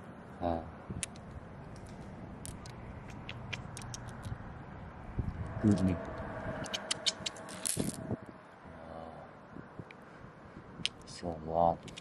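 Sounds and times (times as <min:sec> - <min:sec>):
glass stones clicking together: 0:01.0 - 0:04.4, 0:06.7 - 0:08.0, 0:11.8 - 0:12.0.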